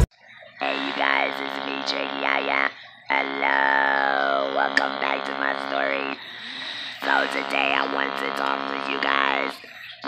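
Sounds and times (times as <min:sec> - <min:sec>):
electrolarynx speech buzz: 0:00.3 - 0:10.0.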